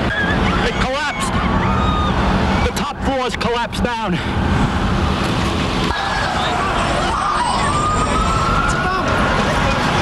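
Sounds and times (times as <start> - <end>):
emergency siren wailing: 0.0 - 2.8, 5.9 - 9.6
street noise: 0.0 - 10.0.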